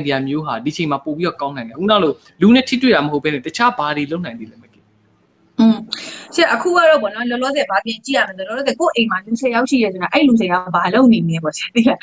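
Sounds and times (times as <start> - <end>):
man talking: 0.0 - 4.8.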